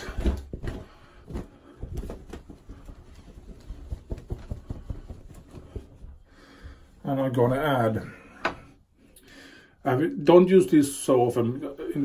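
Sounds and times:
wet hands patting face: 0:00.0 - 0:06.8.

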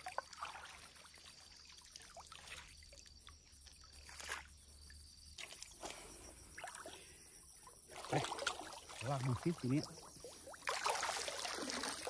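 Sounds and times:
pond water splashing: 0:00.0 - 0:12.0.

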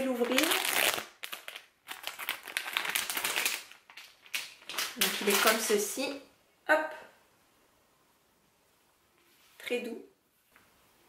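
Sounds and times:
plastic pouch crinkling: 0:00.0 - 0:06.0.

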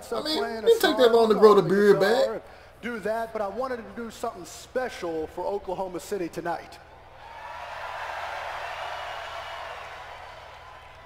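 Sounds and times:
crowd cheering and applauding: 0:07.2 - 0:11.0.

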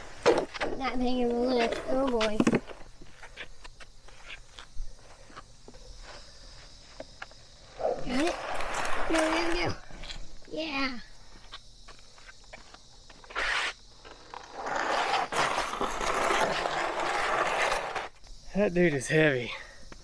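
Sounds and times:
plastic sled scraping on concrete: 0:07.6 - 0:09.9, 0:12.0 - 0:18.2.

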